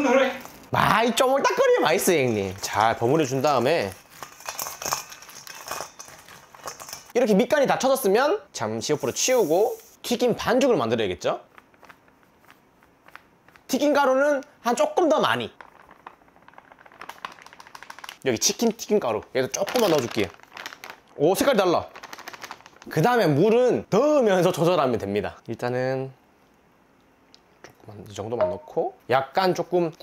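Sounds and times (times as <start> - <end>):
crab shells clicking in a bowl: 15.5 - 18.2.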